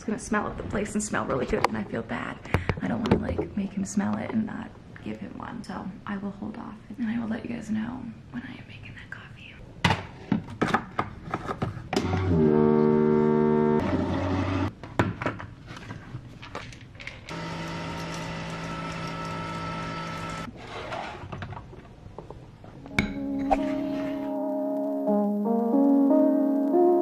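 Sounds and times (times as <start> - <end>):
coffee maker droning hum: 17.3 - 20.5.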